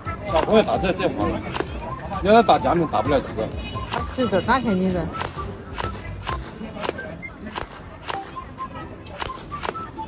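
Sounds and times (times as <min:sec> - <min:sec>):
toy rifle shots: 0:05.2 - 0:08.4.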